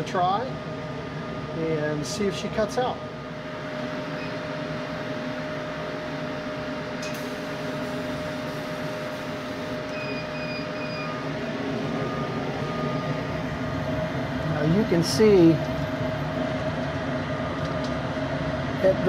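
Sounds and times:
machine hum: 0.0 - 19.0
thin steady whine: 0.0 - 19.0.

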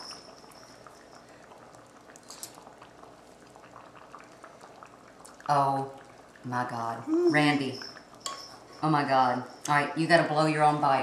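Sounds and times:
soup bubbling in a pot: 0.0 - 11.0.

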